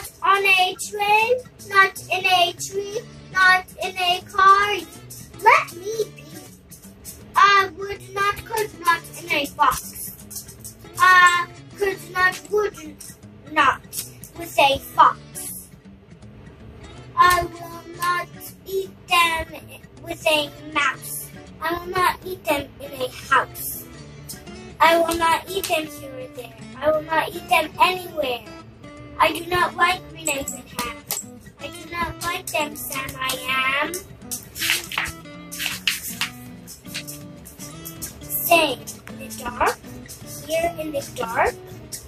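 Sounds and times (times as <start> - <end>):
child singing: 0.0 - 6.4, 7.4 - 10.1, 11.0 - 12.9, 17.2 - 23.8, 24.8 - 28.5, 29.2 - 31.0, 31.6 - 34.0, 40.4 - 41.5
background music: 0.0 - 42.0
book page rustling: 34.4 - 37.2.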